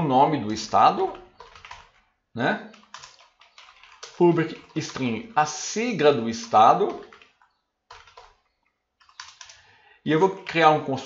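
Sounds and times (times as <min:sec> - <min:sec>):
faint typing on keyboard: 0:00.4 - 0:11.0.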